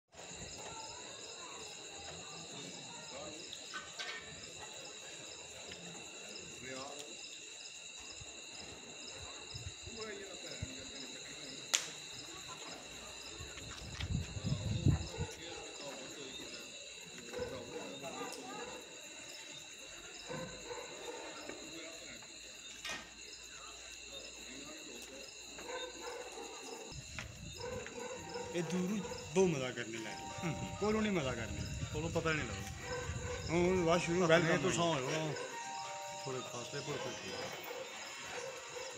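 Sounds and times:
insects trilling: 0:00.1 - 0:38.9
faint voices: 0:08.3 - 0:38.9.

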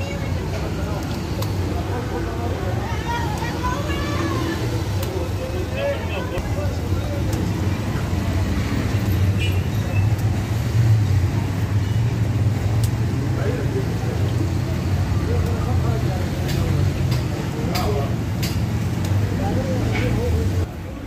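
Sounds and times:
road traffic rumble: 0:00.0 - 0:21.0.

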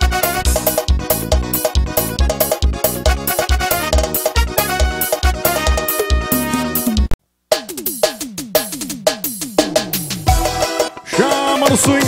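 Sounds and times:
electronic tom drum fill: 0:00.5 - 0:11.0.

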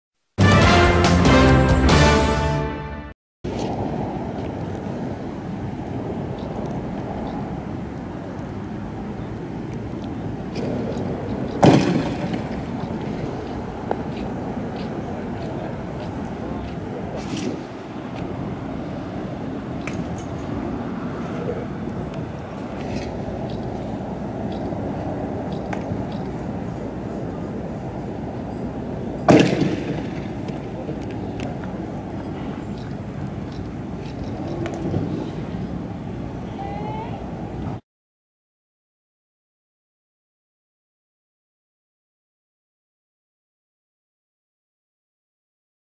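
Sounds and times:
steady background noise: 0:03.5 - 0:37.8
loud sharp bangs with echo: 0:11.6 - 0:12.5, 0:29.3 - 0:30.2.

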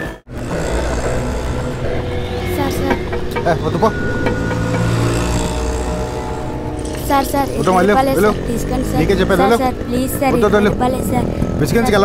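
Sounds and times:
background music: 0:00.0 - 0:12.0
street traffic rumble: 0:00.0 - 0:12.0.

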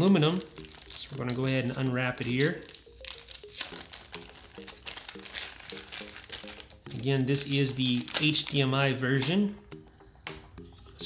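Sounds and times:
plastic wrap crinkling: 0:00.0 - 0:09.5.

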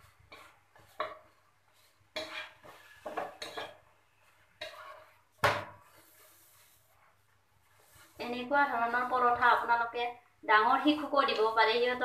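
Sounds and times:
spatula scraping frying pan: 0:00.0 - 0:09.8.

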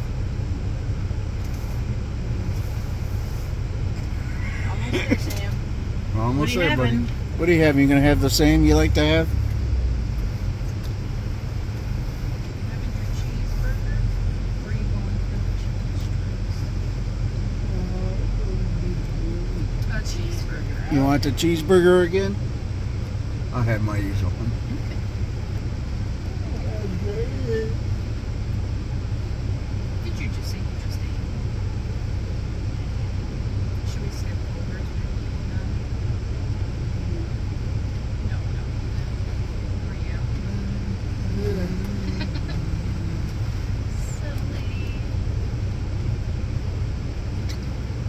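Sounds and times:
minivan idling: 0:00.0 - 0:48.0.

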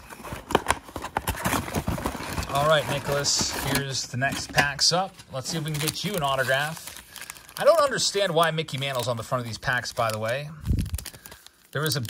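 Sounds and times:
cardboard box being opened: 0:00.0 - 0:04.6.

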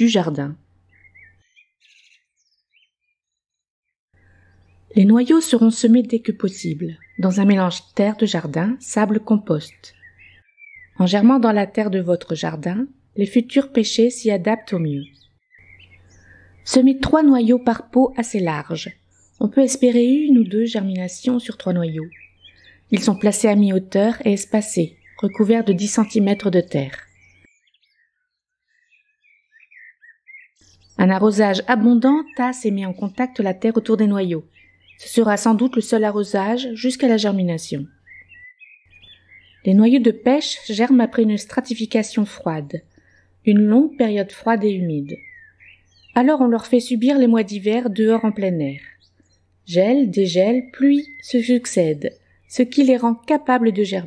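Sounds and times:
faint bird chirps: 0:00.9 - 0:03.6, 0:04.2 - 0:11.8, 0:13.6 - 0:54.0.

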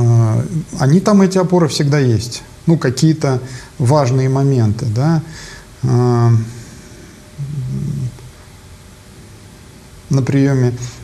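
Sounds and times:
man humming hesitantly: 0:07.4 - 0:08.3.

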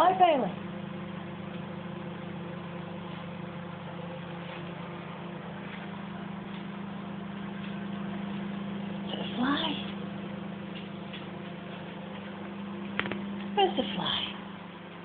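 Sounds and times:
low machine hum: 0:00.0 - 0:15.0.

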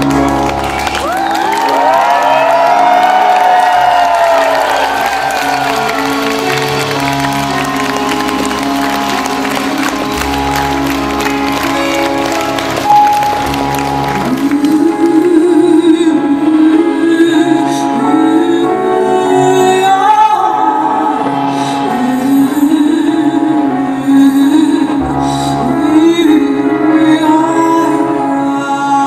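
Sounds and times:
electric keyboard: 0:00.0 - 0:29.0
audience cheering and whistling: 0:00.1 - 0:10.6.

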